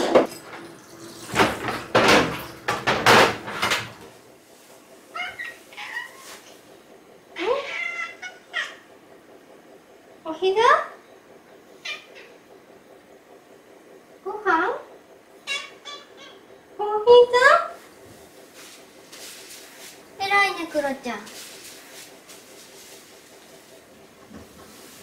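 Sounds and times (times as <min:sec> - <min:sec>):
kitchen knocks clattering: 0:00.0 - 0:04.1.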